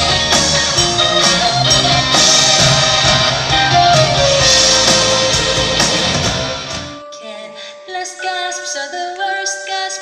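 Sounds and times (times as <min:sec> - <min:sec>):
live rock band playing: 0:00.0 - 0:07.0
person singing with vibrato: 0:06.8 - 0:10.0.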